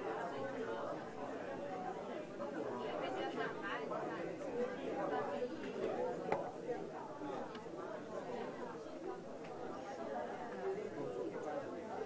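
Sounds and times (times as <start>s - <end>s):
murmur of chatter: 0.0s - 12.0s.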